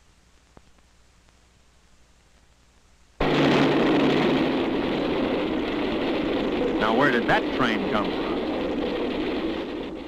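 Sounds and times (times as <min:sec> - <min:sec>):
train rushing past: 0:03.2 - 0:10.0.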